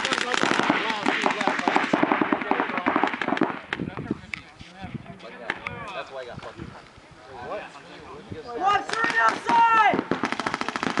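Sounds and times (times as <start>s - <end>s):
paintball guns firing: 0.0s - 3.8s, 8.8s - 11.0s.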